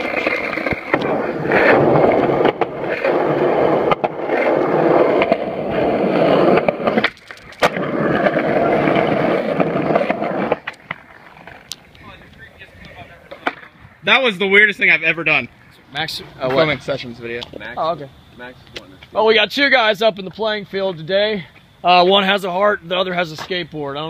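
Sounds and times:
skateboard clacks: 0:00.0 - 0:13.7
skateboard wheels rolling on concrete: 0:00.0 - 0:24.0.

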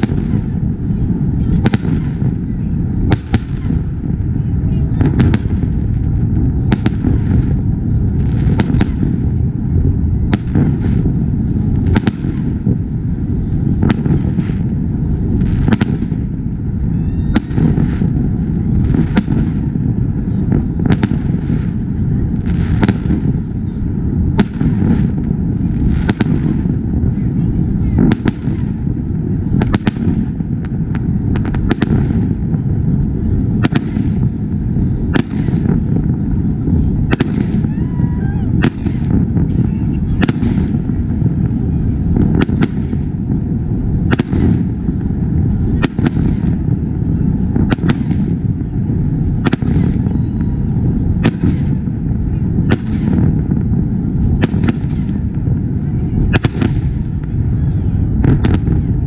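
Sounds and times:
continuous low rumble: 0:00.0 - 0:59.0
fireworks bangs: 0:00.0 - 0:59.0.

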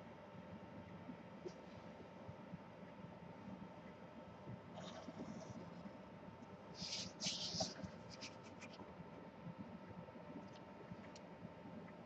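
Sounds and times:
pencil scratching on paper: 0:06.8 - 0:08.7.

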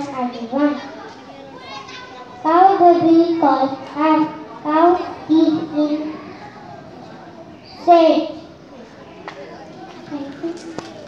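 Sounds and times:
girl speaking into a microphone: 0:00.0 - 0:06.8, 0:07.6 - 0:08.6, 0:10.0 - 0:10.8
faint children's voices: 0:00.0 - 0:11.0.

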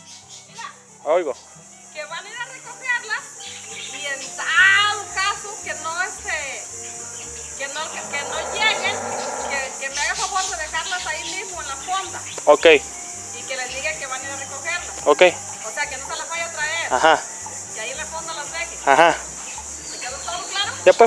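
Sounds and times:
high-pitched insect chorus: 0:00.0 - 0:21.0
voices talking: 0:02.1 - 0:21.0.

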